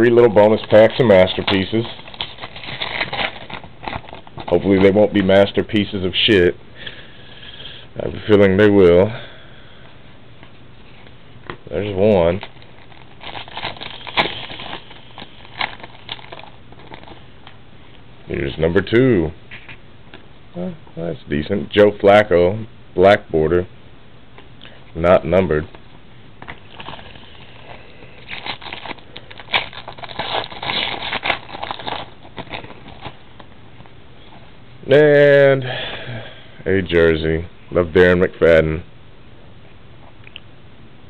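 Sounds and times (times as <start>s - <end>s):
foil wrapper crinkling and tearing: 0.3s - 4.9s, 11.8s - 17.3s, 26.4s - 33.5s.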